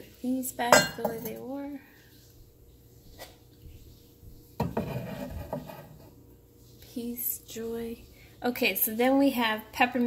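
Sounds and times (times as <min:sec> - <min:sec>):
ceramic mug knocking on wood: 0:00.8 - 0:01.3
mugs scraping on shelf: 0:04.6 - 0:06.1.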